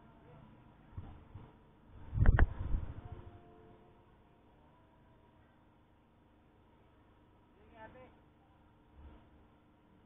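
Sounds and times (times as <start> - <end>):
faint steady background: 0.0 - 10.0.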